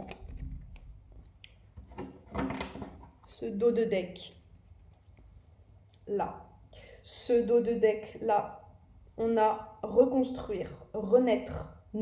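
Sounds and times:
playing cards clicking and rustling: 0.0s - 1.4s.

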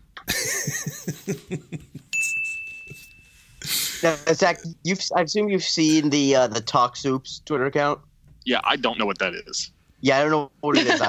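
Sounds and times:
burst of laughter: 0.3s - 2.0s
desk service bell ringing: 2.1s - 3.6s.

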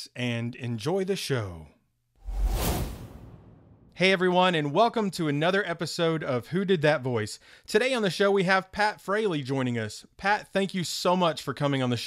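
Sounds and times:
whoosh transition effect: 2.2s - 4.0s.

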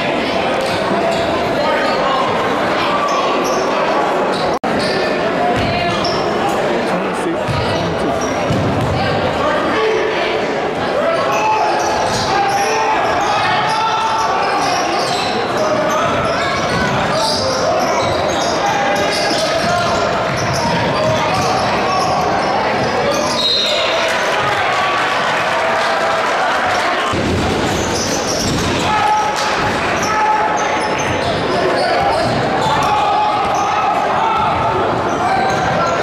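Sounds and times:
voices of players and spectators: 0.0s - 36.0s.

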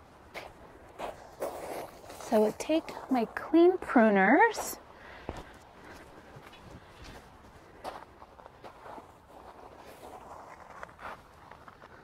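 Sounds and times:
footsteps on gravel: 0.3s - 3.5s, 4.5s - 12.0s.

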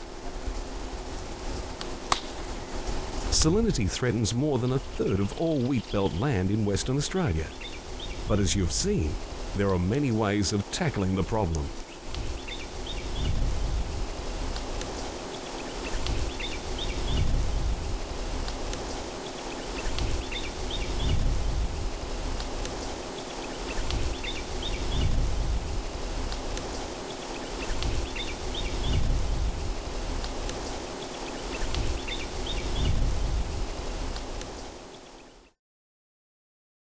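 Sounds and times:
rain hissing: 0.0s - 35.2s
bird chirp: 4.6s - 9.1s, 15.3s - 17.3s, 19.3s - 21.2s, 23.2s - 25.1s, 31.0s - 33.0s.

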